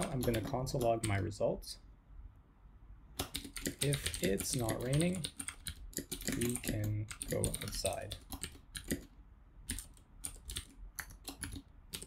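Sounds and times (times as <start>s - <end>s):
typing on computer keyboard: 0.0s - 1.2s, 3.2s - 9.1s, 9.7s - 12.0s.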